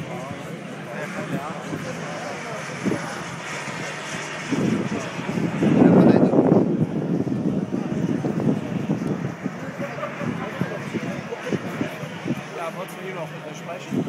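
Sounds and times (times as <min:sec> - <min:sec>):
model jets flying past: 0:00.0 - 0:14.0.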